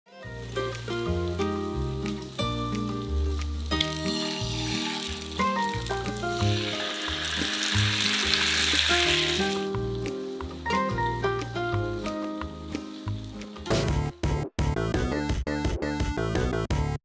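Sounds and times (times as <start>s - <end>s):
eggs sizzling in a pan: 0.2s - 13.7s
background music with bass line: 0.2s - 17.0s.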